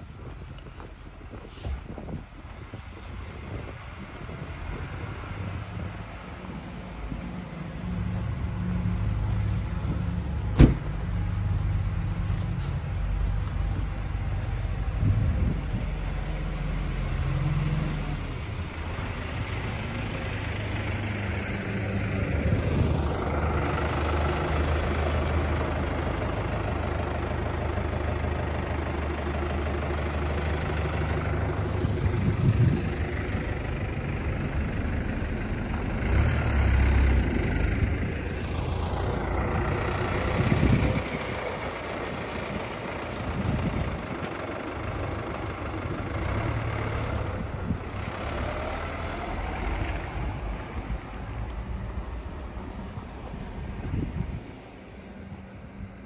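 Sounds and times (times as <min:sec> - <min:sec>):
cars driving past: 0:00.0 - 0:56.0
heavy engine humming: 0:00.0 - 0:56.0.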